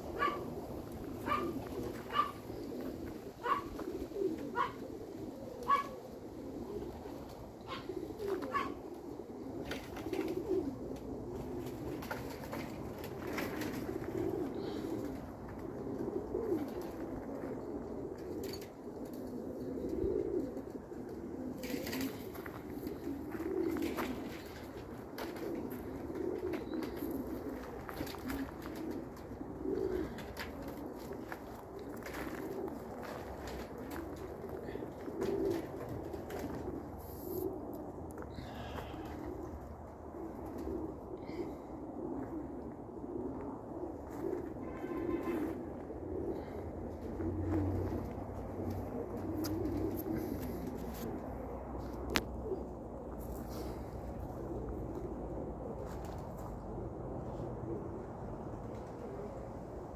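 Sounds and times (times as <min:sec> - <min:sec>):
pigeons cooing: 0:00.0 - 0:59.9.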